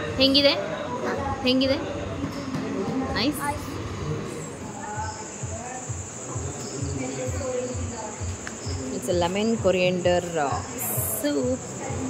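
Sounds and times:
people talking faintly: 0.0s - 12.0s
crickets chirring: 4.2s - 12.0s.

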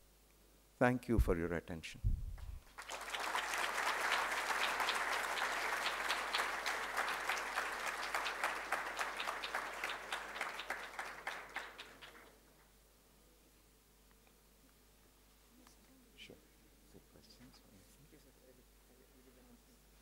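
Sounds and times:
audience applauding: 2.7s - 12.5s.

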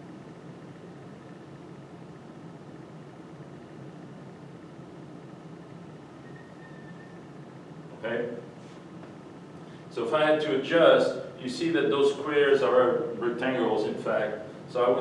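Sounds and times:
ventilation hum and hiss: 0.0s - 15.0s.

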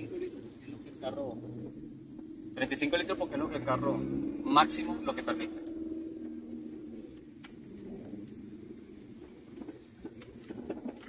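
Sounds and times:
car engine and road noise: 0.0s - 11.0s
faint clicks: 6.5s - 8.5s.

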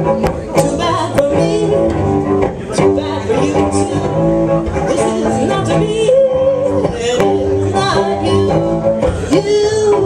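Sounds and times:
bowed cellos: 0.0s - 10.0s
person singing: 0.0s - 10.0s.

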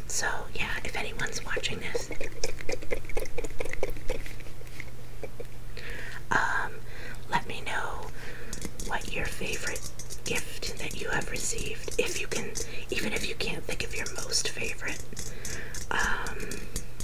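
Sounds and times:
soft whispering: 0.1s - 2.2s, 6.3s - 8.2s, 8.8s - 15.0s.

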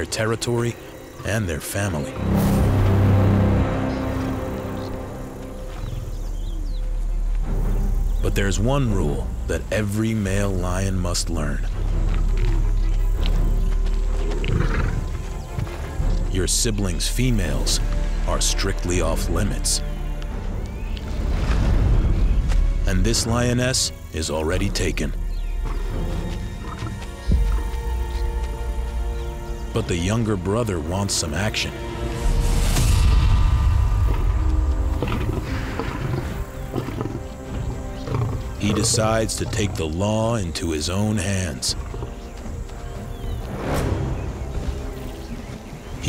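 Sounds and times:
background music: 0.0s - 46.0s
lion vocalising: 11.6s - 16.2s, 34.1s - 43.4s.

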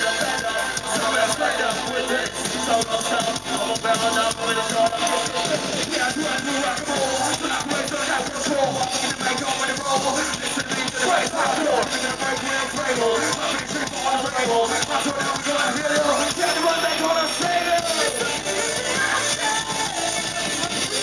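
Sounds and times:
live band over loudspeakers: 0.0s - 21.0s
rapping into microphone: 0.0s - 21.0s.

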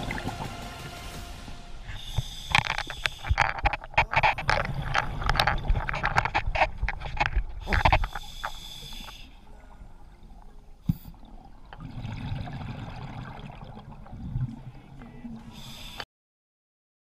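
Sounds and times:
underwater exhaled breath bubbling: 1.9s - 14.8s.

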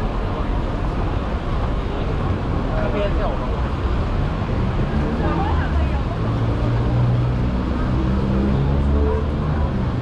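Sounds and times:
people talking: 0.0s - 3.9s, 5.0s - 7.0s
traffic rumble: 0.0s - 10.0s.

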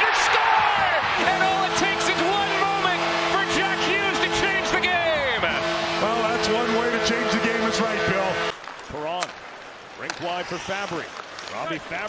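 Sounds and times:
crowd cheering and whooping: 0.0s - 1.3s
goal horn blaring: 0.8s - 8.6s.

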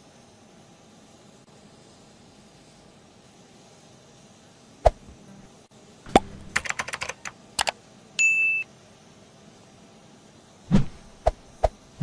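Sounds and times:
faint steady hum: 0.0s - 12.0s
typing-like clicks: 6.5s - 7.8s.

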